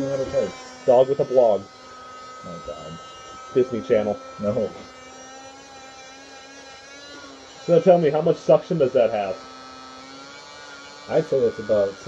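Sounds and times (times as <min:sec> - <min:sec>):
small vacuum motor whining: 0:00.0 - 0:12.0.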